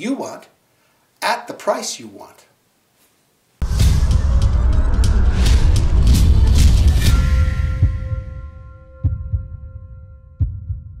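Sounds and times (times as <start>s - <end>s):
deep heartbeat-like thumps: 3.6s - 9.8s, 10.4s - 11.0s.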